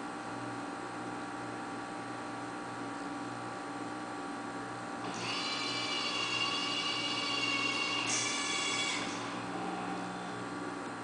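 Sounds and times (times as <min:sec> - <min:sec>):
robot arm motors whining: 0:05.0 - 0:10.2.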